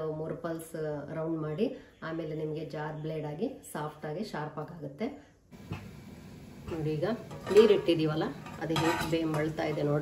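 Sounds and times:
metal lid clinking and scraping: 6.7 - 10.0.

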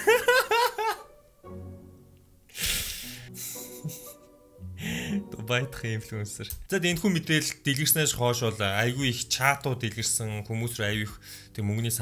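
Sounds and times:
background music: 0.0 - 12.0
man gasping breaths: 2.5 - 3.3, 4.8 - 5.2.

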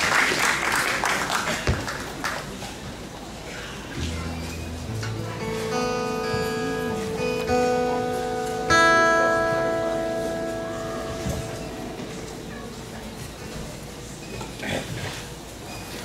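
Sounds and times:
acoustic guitar chord ringing: 4.0 - 13.6
acoustic guitar notes plucked: 4.0 - 14.3.

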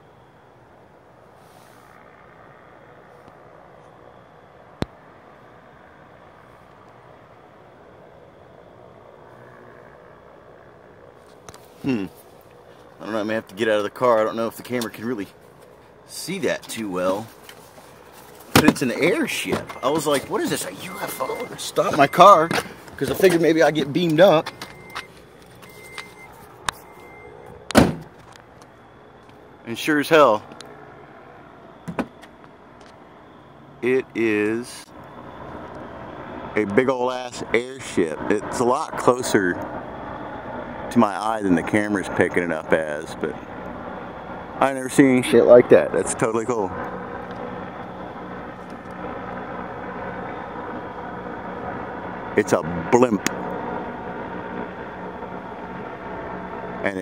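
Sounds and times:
car engine idling: 2.4 - 57.0
car door thump: 27.7 - 28.2, 31.9 - 32.2.

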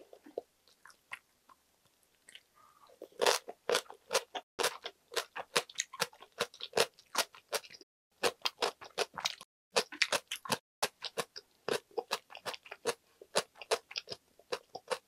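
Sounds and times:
chewing crunchy food: 0.0 - 15.0.

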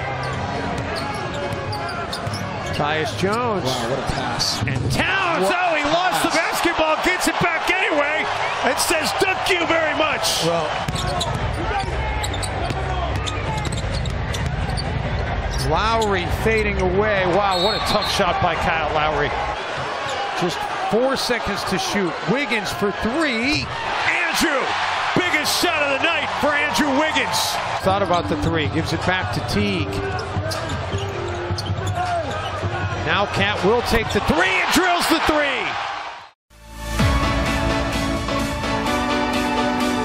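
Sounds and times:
low arena background noise: 0.0 - 35.9
sneaker squeaks: 0.2 - 3.5, 10.8 - 16.2, 29.9 - 32.8.

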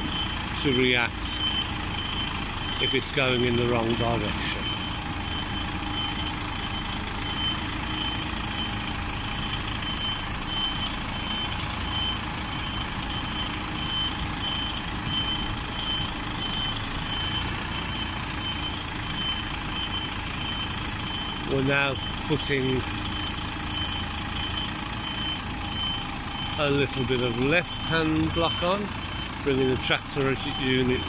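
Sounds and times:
lorry diesel engine running: 0.0 - 31.0
reversing alarm beeps: 0.0 - 31.0.

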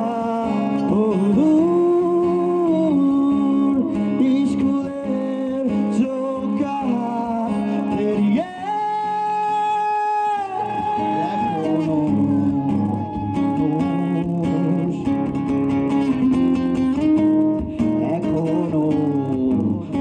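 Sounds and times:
men singing through microphones: 0.0 - 15.2, 18.0 - 20.0
guitar accompaniment: 0.0 - 20.0.

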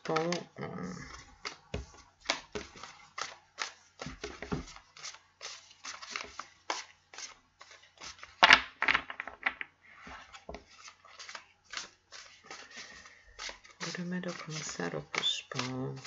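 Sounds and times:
cards being shuffled by hand: 0.0 - 16.0.

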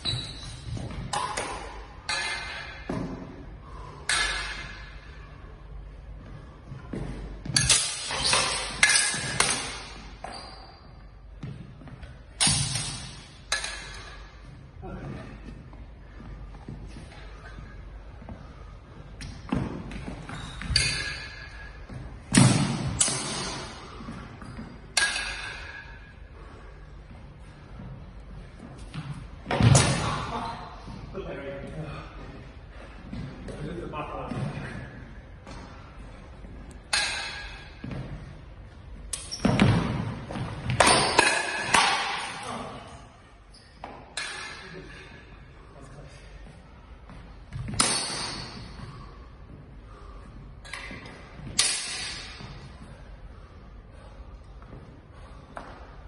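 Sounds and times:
steel blades clashing: 7.6 - 9.9.

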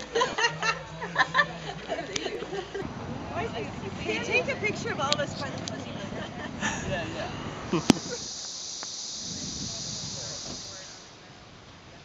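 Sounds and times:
faint voices: 0.0 - 8.3, 9.3 - 12.0
high-pitched insect chorus: 4.4 - 12.0.

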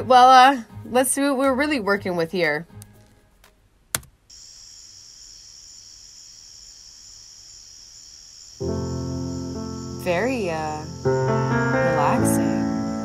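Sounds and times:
crickets chirping: 4.3 - 13.0
music sustained chord: 8.6 - 13.0.

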